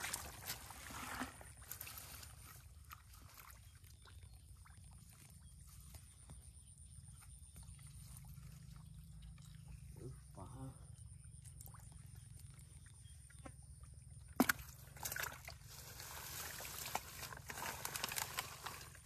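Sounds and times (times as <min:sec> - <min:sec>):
hands digging in wet mud: 0:14.4 - 0:19.0.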